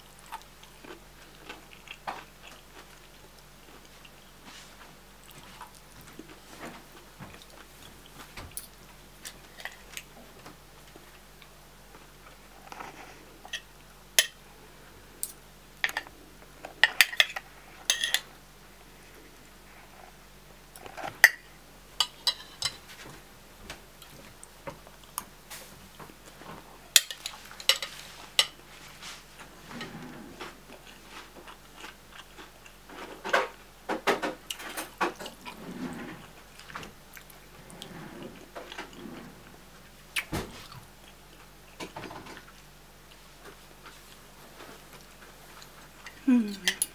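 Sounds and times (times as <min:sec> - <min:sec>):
chewing: 0:00.1 - 0:06.4, 0:30.4 - 0:33.3
spoon and fork clinking on a bowl: 0:16.8 - 0:18.3.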